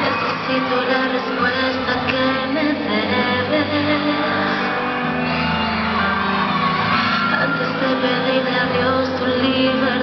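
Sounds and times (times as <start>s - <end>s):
person singing: 0.0s - 5.2s, 7.3s - 10.0s
audience shouting and cheering: 0.0s - 10.0s
live concert music: 0.0s - 10.0s.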